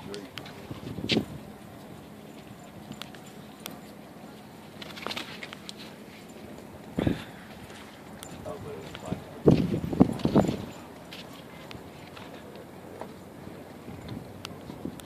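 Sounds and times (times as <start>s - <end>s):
faint indistinct voices: 0.0s - 14.0s
outdoor background noise: 0.0s - 15.0s.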